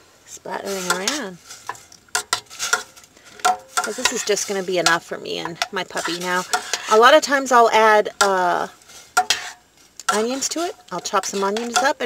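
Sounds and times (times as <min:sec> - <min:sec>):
metal spoon clinking in pot: 0:09.2 - 0:12.0.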